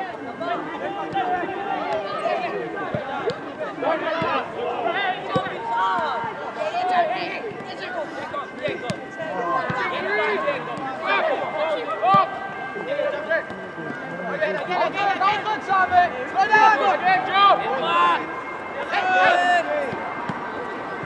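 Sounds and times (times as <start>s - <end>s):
people shouting: 16.3s - 21.0s.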